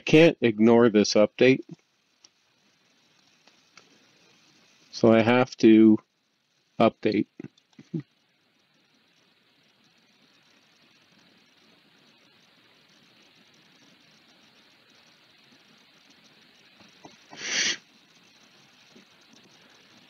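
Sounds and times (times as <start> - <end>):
microphone hiss: 0.0 - 20.0
breath on microphone: 17.0 - 17.9.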